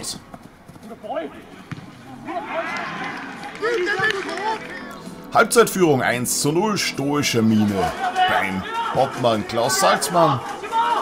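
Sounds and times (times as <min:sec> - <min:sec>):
players shouting: 0:01.0 - 0:05.2, 0:06.6 - 0:11.0.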